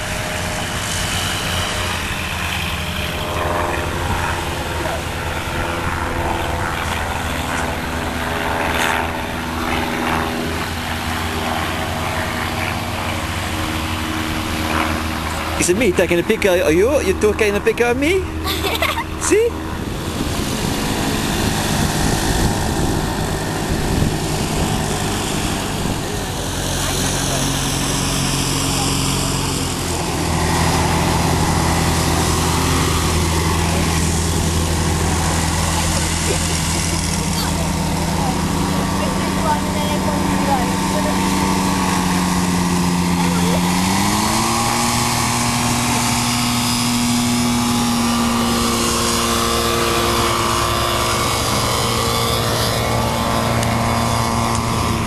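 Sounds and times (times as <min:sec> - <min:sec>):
aircraft engine revving: 0:00.0 - 0:55.0.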